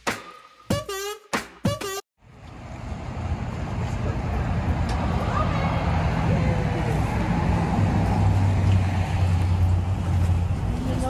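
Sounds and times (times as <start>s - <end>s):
outdoor traffic noise: 2.2s - 11.0s
vehicle engine humming: 2.2s - 11.0s.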